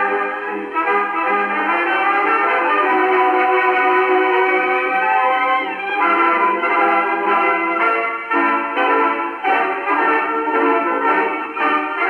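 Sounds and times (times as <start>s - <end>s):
dance orchestra on old record: 0.0s - 12.0s.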